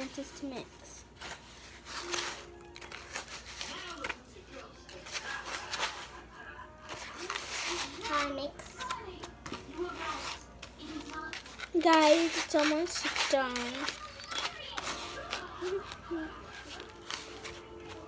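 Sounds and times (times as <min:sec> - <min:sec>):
spoon scraping gritty scrub in bowl: 0:09.9 - 0:15.4.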